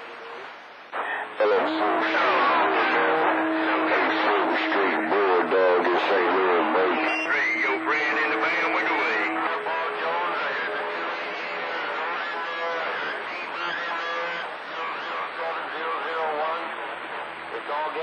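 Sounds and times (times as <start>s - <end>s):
music over radio speaker: 0.0s - 18.0s.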